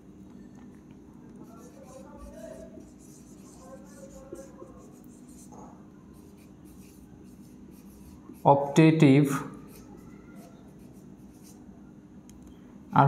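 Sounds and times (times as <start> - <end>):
marker writing on whiteboard: 1.3 - 11.7.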